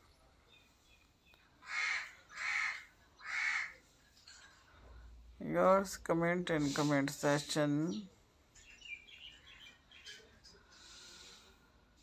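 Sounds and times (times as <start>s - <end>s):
bird harsh calls: 1.6s - 3.8s.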